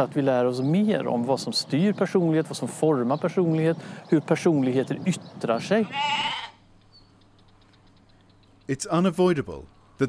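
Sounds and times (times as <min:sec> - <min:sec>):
sheep bleating: 0:05.8 - 0:06.6.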